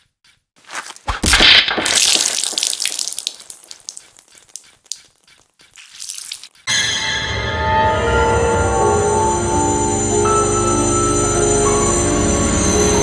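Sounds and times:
music: 0:06.7 - 0:13.0.

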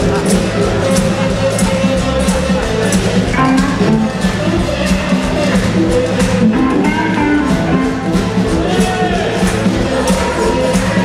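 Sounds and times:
live blues band playing: 0:00.0 - 0:11.0.

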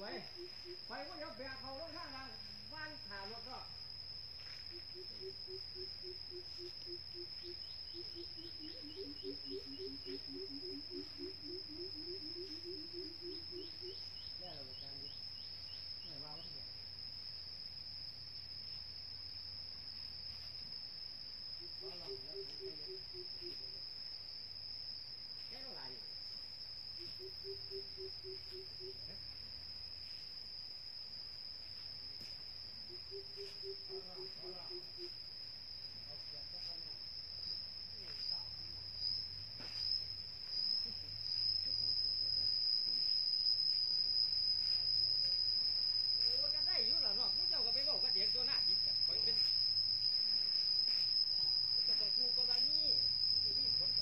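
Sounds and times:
insects droning: 0:00.0 - 0:54.0.

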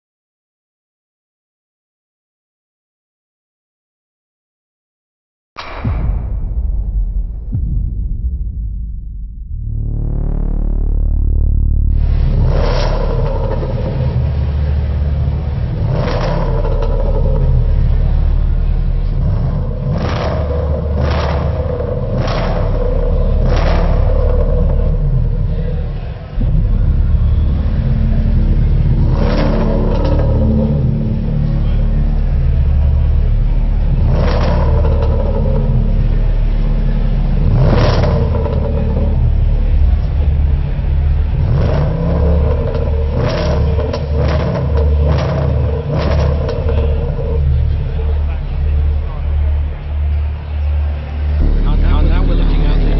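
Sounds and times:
engine rumbling: 0:05.6 - 0:52.9
crowd chatter: 0:11.9 - 0:52.9.

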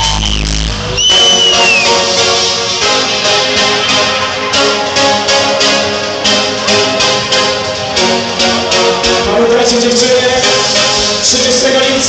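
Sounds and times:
loud electronic dance music: 0:00.0 - 0:12.0.

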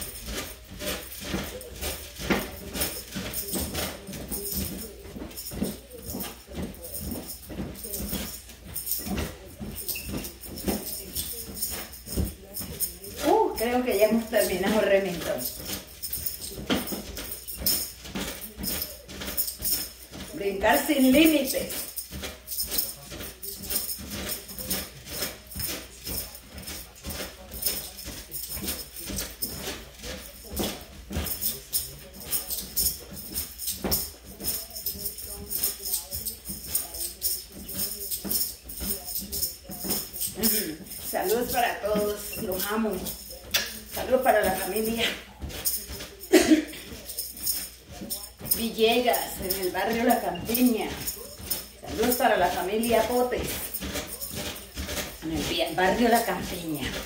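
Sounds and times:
upbeat music with rattling percussion: 0:00.0 - 0:57.0
voice: 0:09.0 - 0:15.6, 0:20.3 - 0:21.8, 0:39.1 - 0:47.2, 0:47.9 - 0:54.4, 0:55.2 - 0:57.0.

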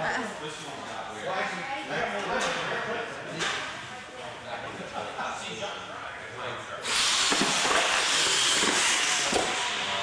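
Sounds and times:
toy truck motors and tyres whirring: 0:06.8 - 0:10.0.

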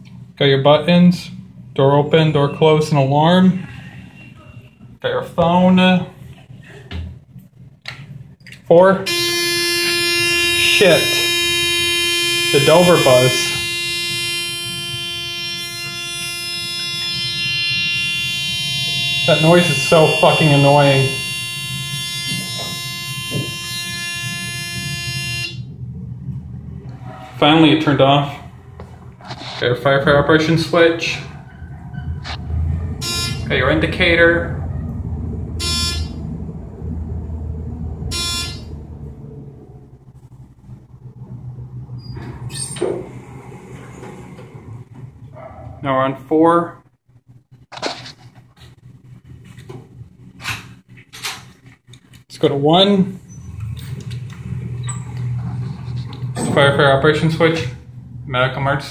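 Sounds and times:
elevator buzz: 0:09.0 - 0:45.7, 0:53.0 - 0:58.9
elevator doors opening: 0:16.6 - 0:25.0, 0:41.2 - 0:45.8, 0:53.2 - 0:58.2
short electronic beeps: 0:33.0 - 0:33.5.

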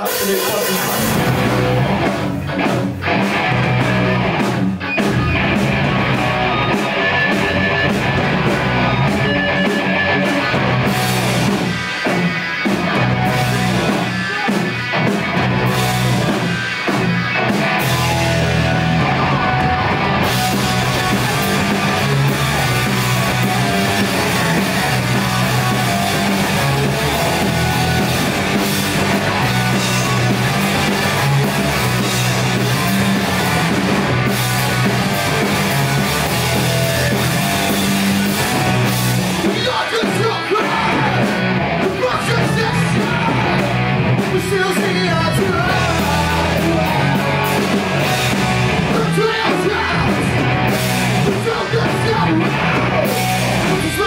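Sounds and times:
punk rock band playing: 0:00.0 - 0:54.0.

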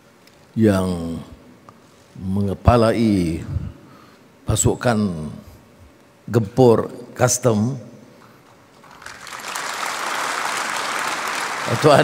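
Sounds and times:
audience applause: 0:08.8 - 0:12.0.

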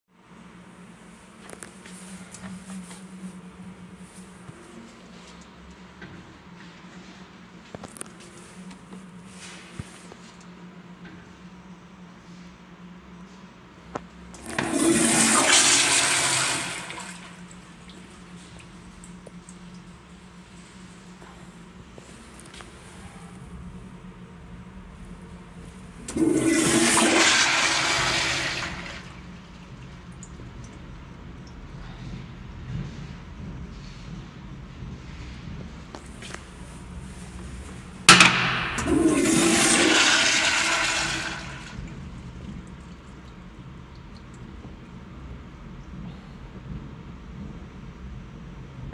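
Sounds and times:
toilet flushing water rush: 0:14.3 - 0:19.7, 0:25.6 - 0:31.4, 0:38.0 - 0:45.1
toilet valve click: 0:38.1 - 0:41.0.

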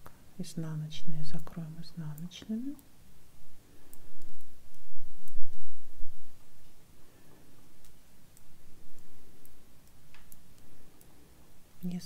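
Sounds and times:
knitting needles clicking: 0:03.9 - 0:05.6, 0:07.8 - 0:11.1.

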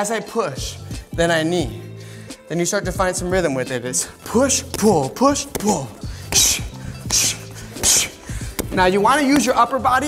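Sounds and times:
background music: 0:00.0 - 0:10.0
sharp hissing exhales: 0:06.0 - 0:08.7.

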